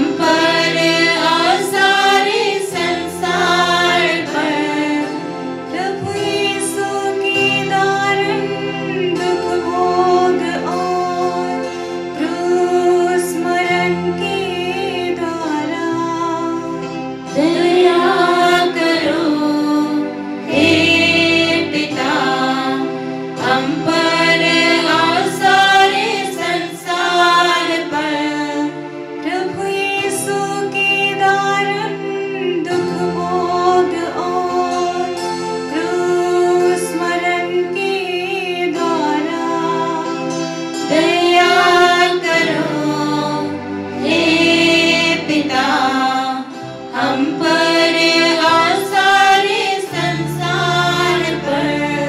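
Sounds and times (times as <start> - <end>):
choir singing a hymn: 0.0 - 52.0.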